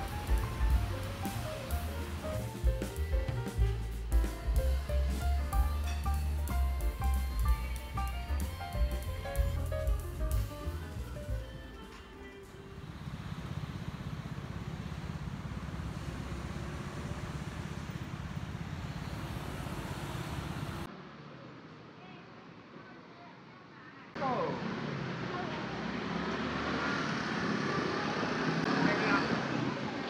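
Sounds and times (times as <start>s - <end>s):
background music with drum beat: 0.0s - 11.8s
cars passing on road: 0.0s - 22.8s, 24.1s - 30.0s.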